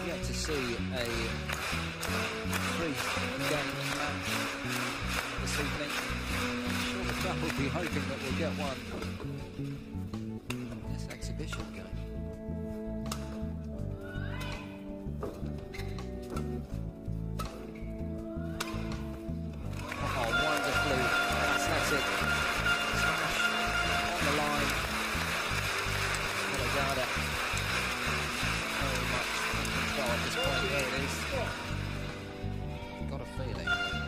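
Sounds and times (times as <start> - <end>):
crowd applause and cheering: 0.0 - 9.2, 19.7 - 32.9
low background music: 0.0 - 34.0
racket hitting shuttlecock: 17.4 - 17.8, 18.6 - 19.1.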